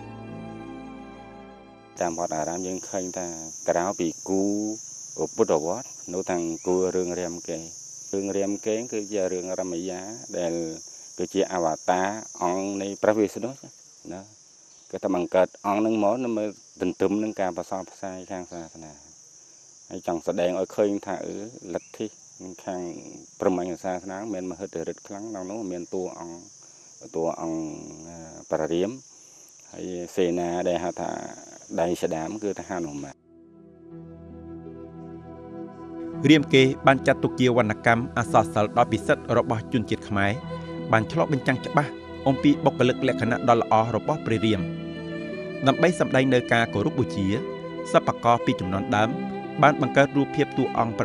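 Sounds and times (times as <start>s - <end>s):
insects chirring: 0.0s - 51.0s
man speaking: 2.0s - 14.3s, 15.0s - 19.0s, 19.9s - 29.0s, 29.7s - 33.2s, 36.2s - 44.8s, 45.6s - 51.0s.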